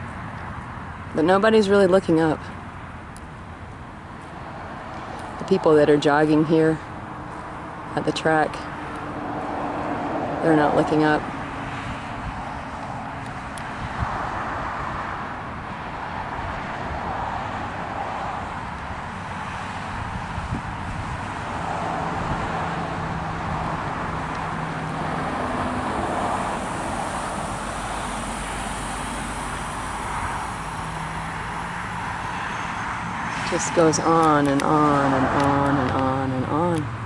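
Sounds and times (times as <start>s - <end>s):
outdoor background noise: 0.0s - 37.0s.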